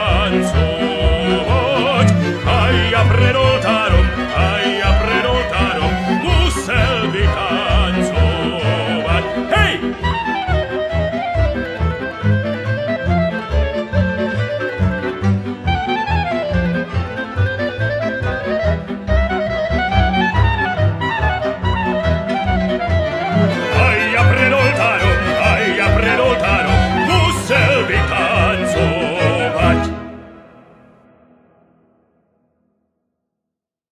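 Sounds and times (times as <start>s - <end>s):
violin melody: 0.0s - 30.9s.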